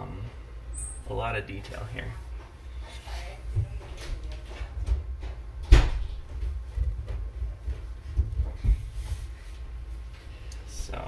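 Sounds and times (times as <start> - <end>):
dull knocks and thumps: 4.6 - 9.1.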